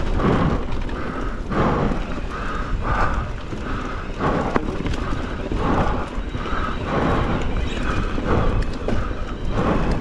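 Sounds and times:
mountain bike rattling: 0.0 - 10.0
rhythmic rushing pulse: 0.0 - 10.0
wind rumbling on microphone: 0.0 - 10.0.

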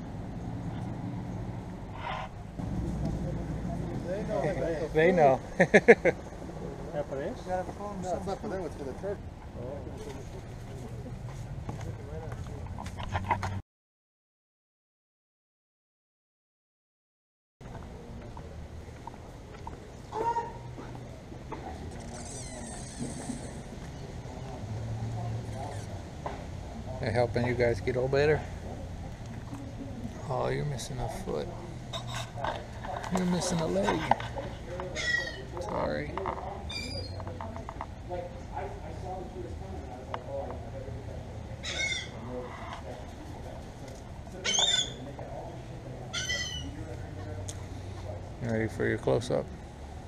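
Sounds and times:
bird squawk: 34.9 - 35.5, 36.7 - 37.2, 41.6 - 42.8, 44.4 - 45.0, 46.1 - 46.8.

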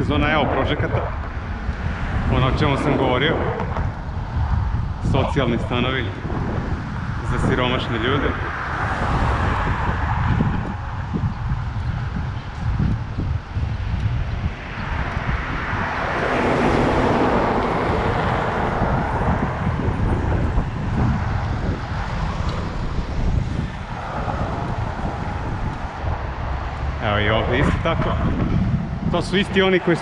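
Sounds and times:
road traffic: 0.0 - 30.0
wind noise on microphone: 0.0 - 30.0.

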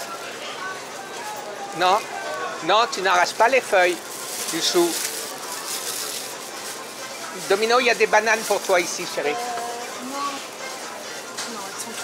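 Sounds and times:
faint background voices: 0.0 - 12.0
plastic bag rustling: 2.7 - 10.6.

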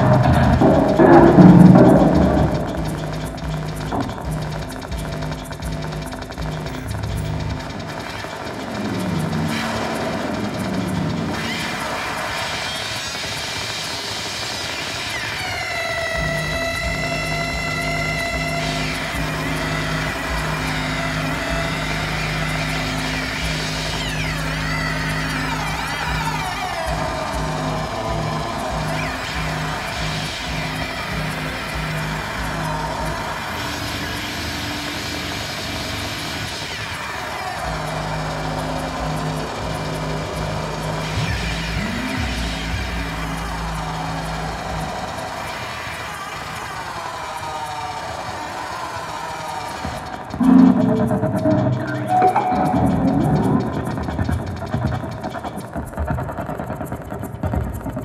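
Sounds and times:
chopping low electronic drone: 0.0 - 12.6, 16.2 - 36.2, 37.6 - 45.2, 50.4 - 58.0
tones sweeping down in pitch: 50.4 - 54.1.

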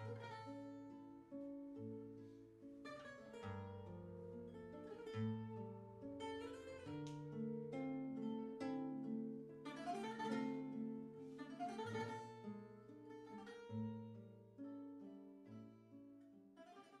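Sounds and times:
guitar soundtrack music: 0.0 - 17.0.

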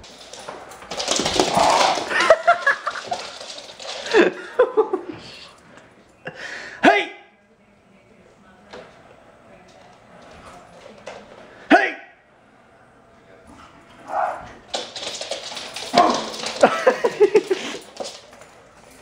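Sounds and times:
people laughing: 2.0 - 3.4, 4.0 - 5.5, 16.5 - 18.0.

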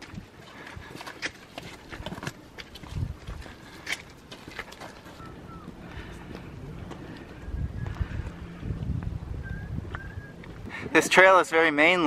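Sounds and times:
footsteps on rocky trail: 0.0 - 12.0.

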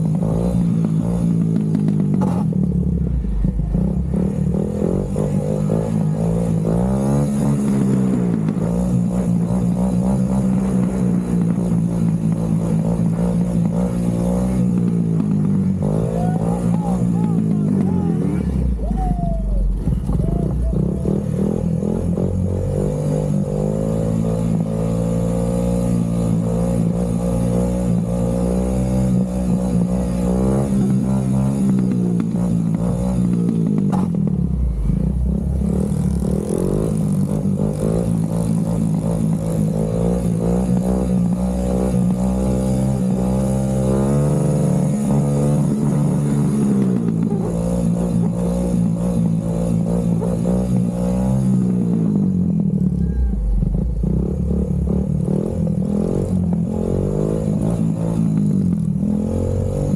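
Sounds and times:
quad bike engine revving: 0.0 - 59.9.

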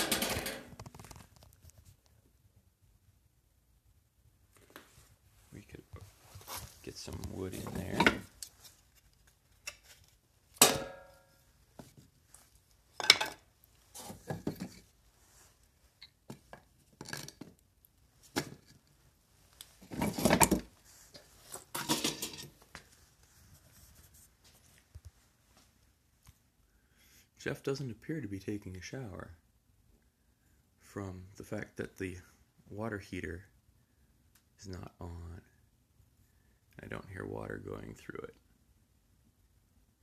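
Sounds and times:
hard objects clattering: 0.0 - 1.1, 21.6 - 22.6.

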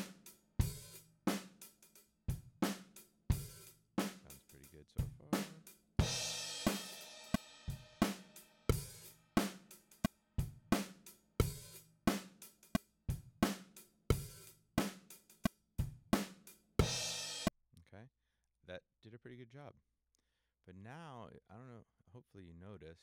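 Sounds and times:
drum kit groove: 0.0 - 17.5.

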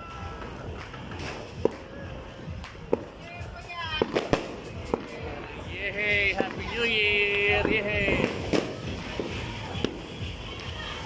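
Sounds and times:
firecrackers banging: 0.0 - 11.0.

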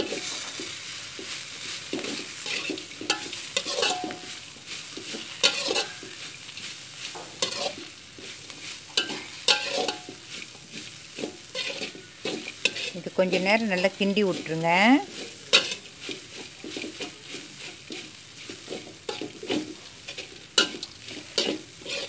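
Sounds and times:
light sizzle: 0.0 - 22.0
metal spatula scraping a wok: 0.0 - 22.0.

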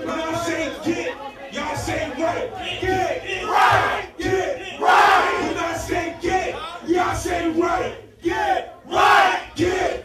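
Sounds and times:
crowd yelling: 2.7 - 6.6.

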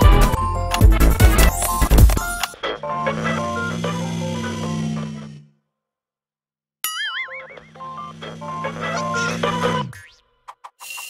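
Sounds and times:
light cartoon music: 0.0 - 5.5, 6.8 - 11.0
cartoon boing sound effect: 6.8 - 7.7.

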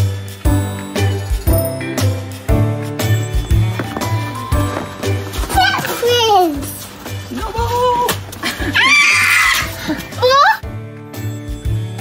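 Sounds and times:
background music: 0.0 - 12.0
child squealing: 8.8 - 10.6.

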